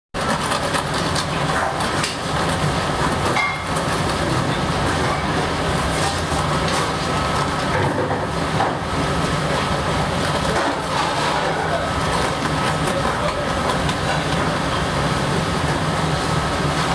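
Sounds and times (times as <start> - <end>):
kitchen machine rush: 0.1 - 16.9.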